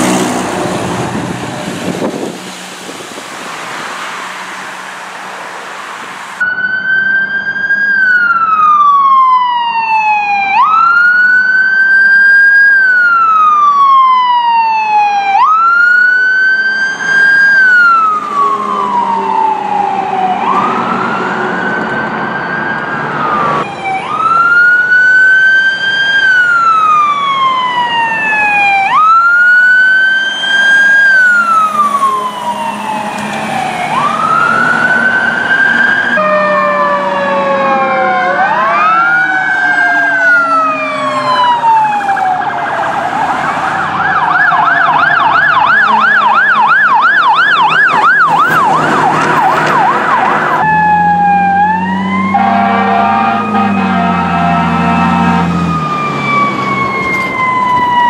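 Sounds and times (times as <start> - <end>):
siren wail: 3.5 - 58.0
siren fast yelp: 26.2 - 58.0
low steady horn blare: 51.7 - 55.8.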